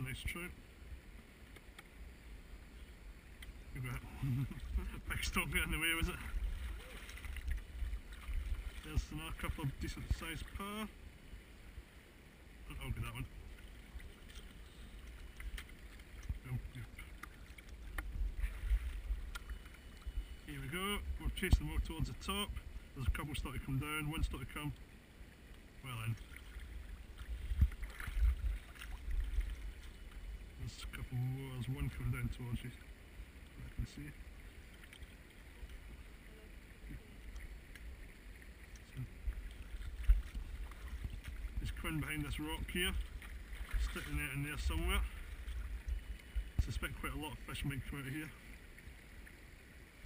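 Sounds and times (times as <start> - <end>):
stream water splashing: 0.0 - 50.0
wind rumble: 26.7 - 30.4
microphone handling noise: 27.3 - 29.6.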